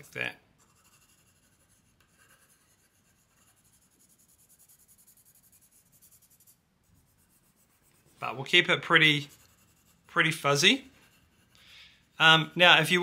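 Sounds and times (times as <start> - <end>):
pencil scratching on paper: 0.0 - 13.0.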